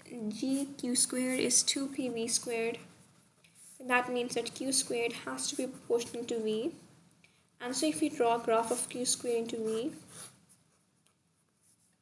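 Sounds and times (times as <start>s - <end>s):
soft rustle: 0.4s - 6.9s, 8.5s - 12.0s.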